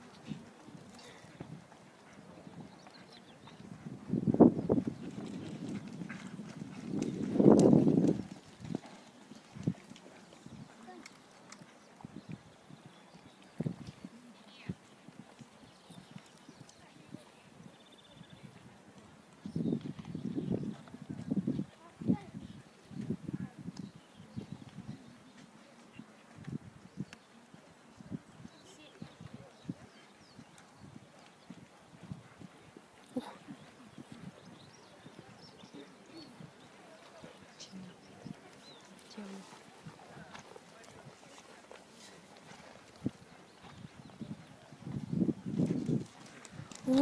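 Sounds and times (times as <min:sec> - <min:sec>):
horse hooves on sand: 0:00.0 - 0:47.0.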